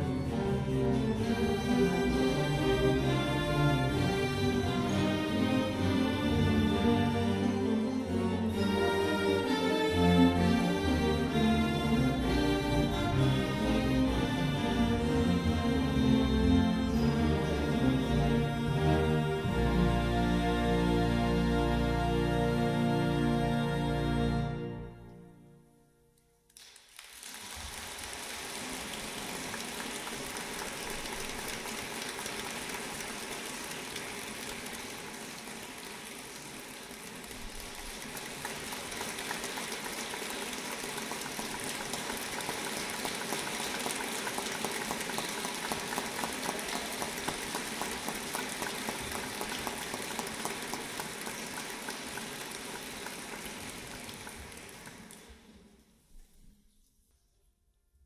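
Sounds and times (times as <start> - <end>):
audience applause: 0.0 - 22.1, 26.6 - 55.6
music: 0.0 - 26.9, 27.6 - 58.0.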